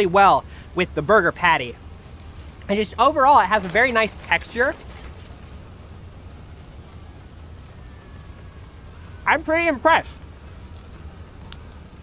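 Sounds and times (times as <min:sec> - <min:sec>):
light hiss: 0:00.0 - 0:12.0
low rumble: 0:01.7 - 0:12.0.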